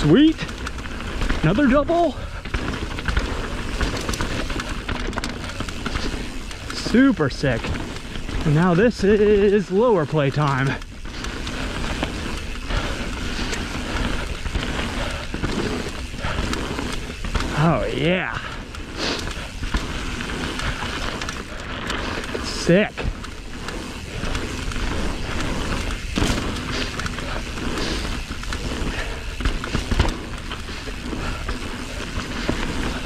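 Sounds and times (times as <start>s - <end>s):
bike clicks and rattles: 0.0s - 33.0s
bike tyres rolling over dirt: 0.0s - 33.0s.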